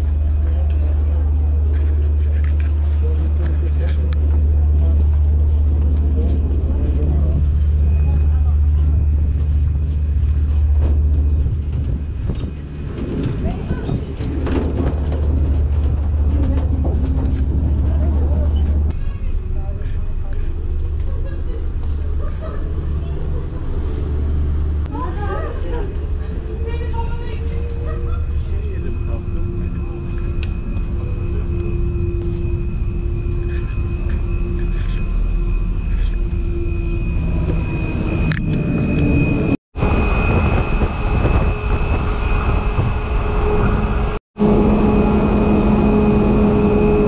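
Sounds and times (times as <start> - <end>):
deep ferry rumble: 0.0 - 47.0.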